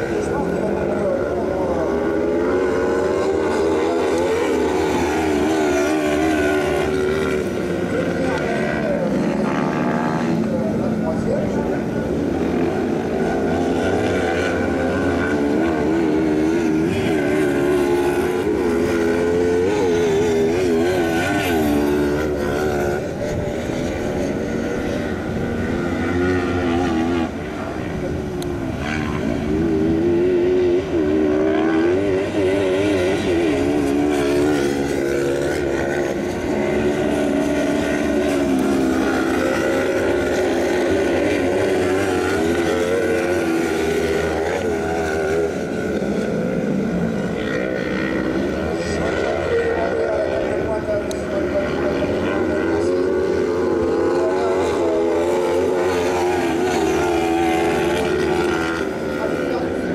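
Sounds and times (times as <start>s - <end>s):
buggy engines revving: 0.0s - 59.9s.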